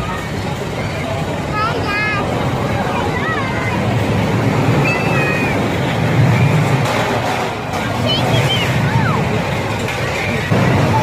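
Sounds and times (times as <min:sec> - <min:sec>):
roller coaster cars rumbling: 0:00.0 - 0:11.0.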